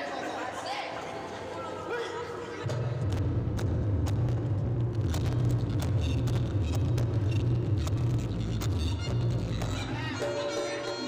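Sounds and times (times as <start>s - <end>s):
loud steady low rumble: 2.7s - 10.1s.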